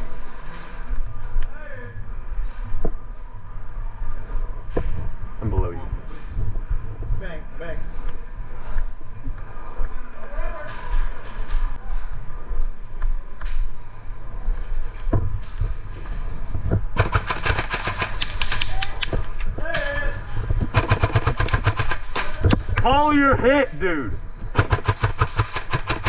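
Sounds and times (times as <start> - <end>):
airsoft guns firing rapidly: 17.0 - 18.9, 20.7 - 22.5, 24.5 - 26.0.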